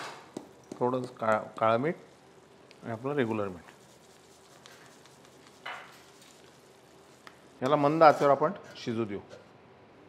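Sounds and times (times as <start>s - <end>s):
small crackles: 3.6s - 7.7s.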